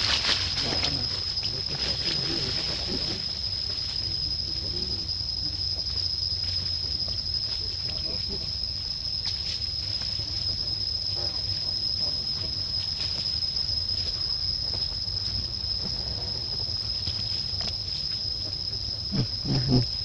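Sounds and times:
high-pitched insect drone: 0.0 - 20.0.

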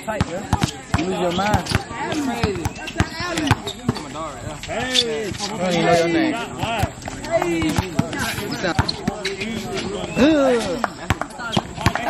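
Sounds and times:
players' voices: 0.0 - 12.0
basketball bouncing on hard court: 0.1 - 4.1, 6.6 - 12.0.

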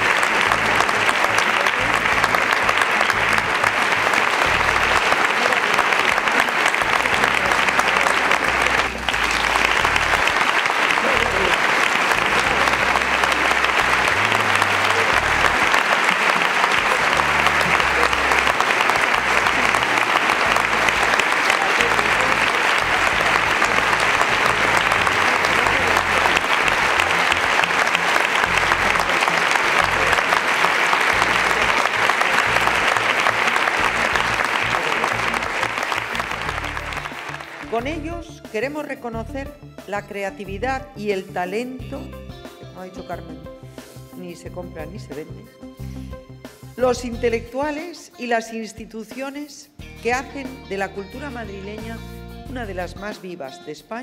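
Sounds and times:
audience applauding: 0.0 - 38.0.

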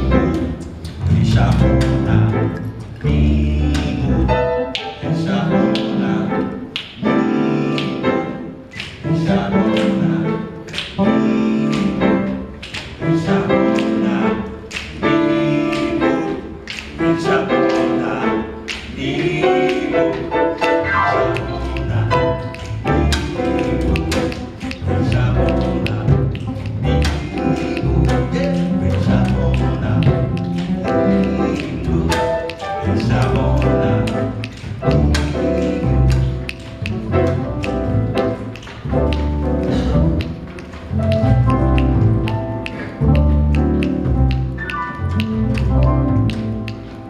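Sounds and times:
bass and piano ensemble playing: 0.0 - 47.0
sharp percussive taps: 8.7 - 47.0.

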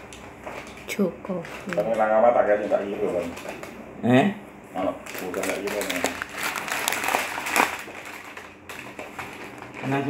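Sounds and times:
foil bags crinkling: 0.6 - 3.8, 4.8 - 10.0.

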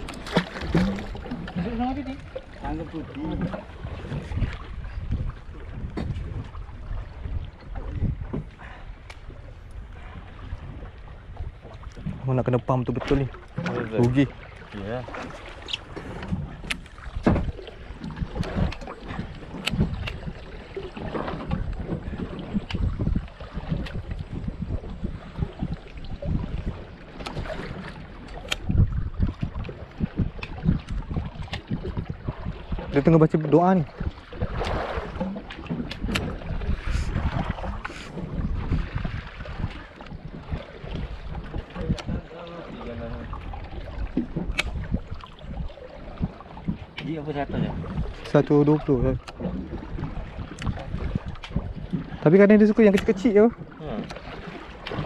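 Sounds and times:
boat at sea: 0.0 - 55.0
wind buffeting microphone: 0.0 - 55.0.

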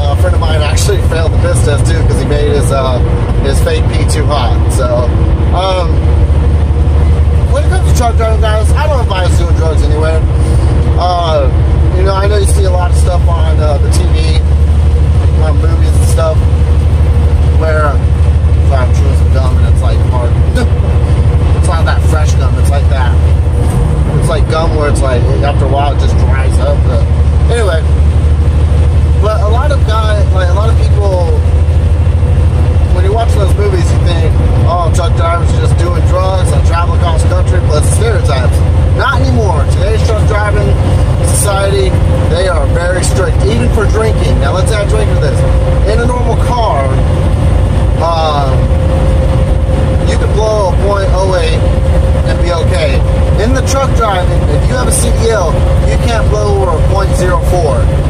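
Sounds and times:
truck diesel engine drone: 0.0 - 58.0.

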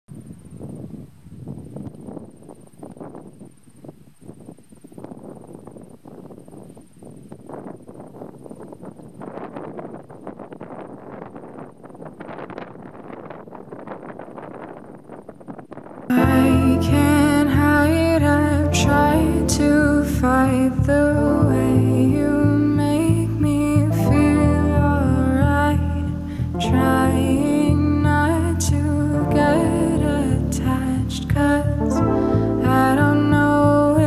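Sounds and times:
gusting wind: 0.1 - 34.0.

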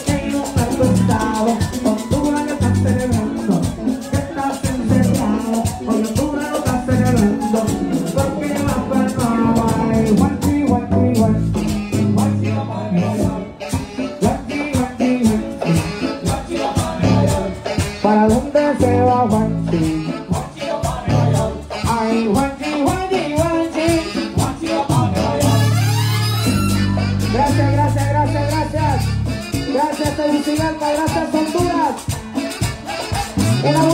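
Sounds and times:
latin dance orchestra: 0.0 - 33.9.

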